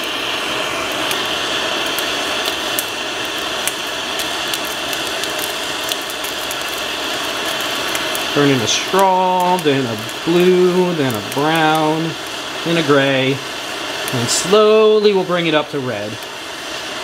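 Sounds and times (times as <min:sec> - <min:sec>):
gas torch hissing: 0:00.0 - 0:17.0.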